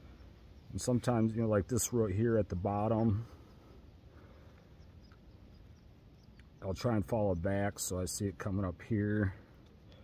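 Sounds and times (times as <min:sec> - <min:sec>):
faint ticks: 0:04.2 - 0:07.0, 0:09.1 - 0:10.0.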